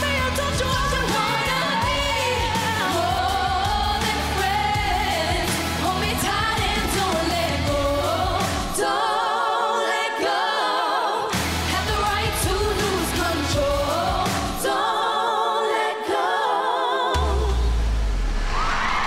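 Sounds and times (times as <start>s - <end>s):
pop backing track: 0.0s - 9.2s, 11.2s - 15.0s
female group singing in harmony: 0.0s - 17.8s.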